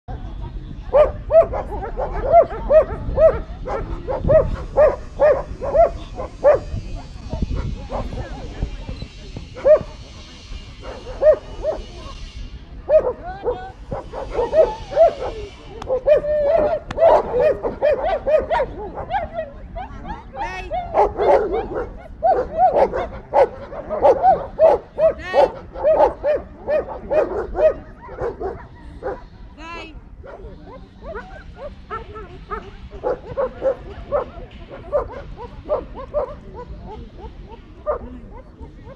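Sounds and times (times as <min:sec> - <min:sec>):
dog barking: 0:00.9 - 0:07.1, 0:09.6 - 0:09.9, 0:15.9 - 0:29.2, 0:30.2 - 0:36.7.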